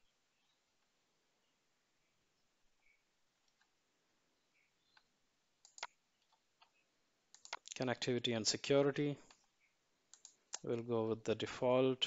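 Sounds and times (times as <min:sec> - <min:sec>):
faint computer mouse clicks: 0:04.9 - 0:07.8, 0:10.1 - 0:10.8
man speaking: 0:07.7 - 0:09.2, 0:10.6 - 0:12.0.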